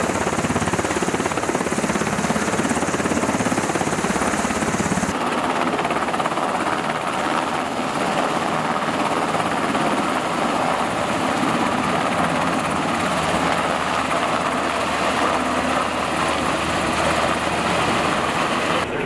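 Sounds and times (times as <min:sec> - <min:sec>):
helicopter rotor thrum: 0:00.0 - 0:19.0
turbine engine noise: 0:15.4 - 0:19.0.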